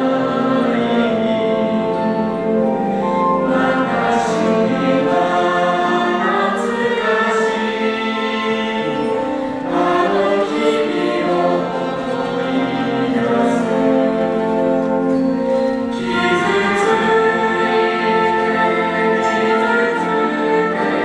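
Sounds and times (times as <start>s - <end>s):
concert wind band: 0.0s - 21.0s
vocal ensemble singing in harmony: 0.0s - 21.0s.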